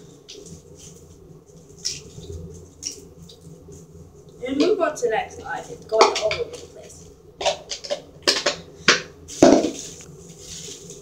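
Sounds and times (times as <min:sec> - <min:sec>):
plastic tubs knocking: 0:05.9 - 0:06.7, 0:07.4 - 0:09.9.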